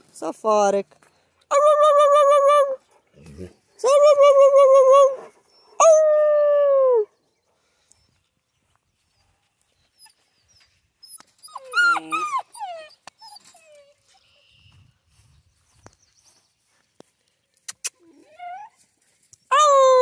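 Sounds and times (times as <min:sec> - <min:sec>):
dogs whining and yelping: 0:03.8 - 0:06.3, 0:09.9 - 0:14.5, 0:18.0 - 0:18.8.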